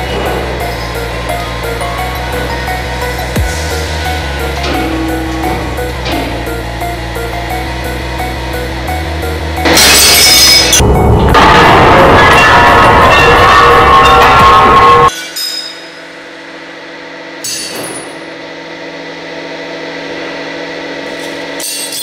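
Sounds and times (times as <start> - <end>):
steady hum: 0.0 - 15.1
glass shattering under a press: 9.7 - 10.8.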